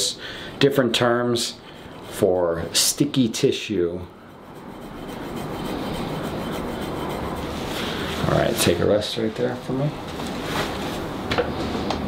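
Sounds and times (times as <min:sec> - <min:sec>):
metal tool rasping on skin: 0:04.1 - 0:08.2.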